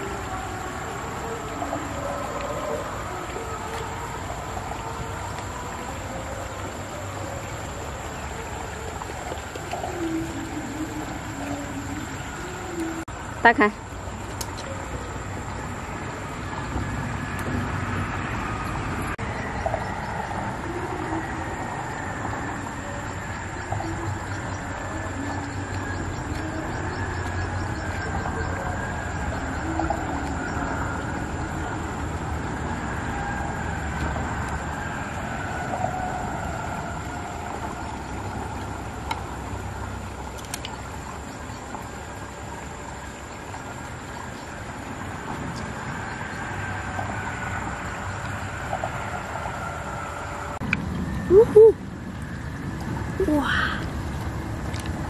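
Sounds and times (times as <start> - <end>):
steady rumbling: 0.0 - 55.0.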